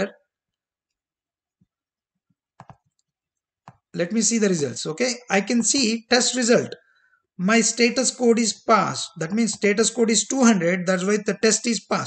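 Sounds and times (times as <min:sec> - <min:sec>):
computer mouse clicks: 0:02.6 - 0:03.9.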